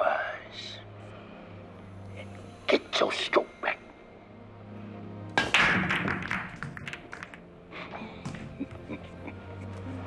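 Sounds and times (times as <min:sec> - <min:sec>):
pool balls clattering: 0:05.4 - 0:07.4
pool balls cracking together: 0:05.4 - 0:07.5.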